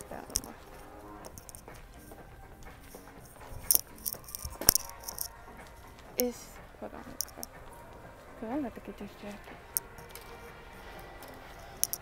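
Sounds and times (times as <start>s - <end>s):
faint background music: 0.0s - 12.0s
sharp clicks and clinks: 3.6s - 5.3s, 7.2s - 7.6s, 11.6s - 12.0s.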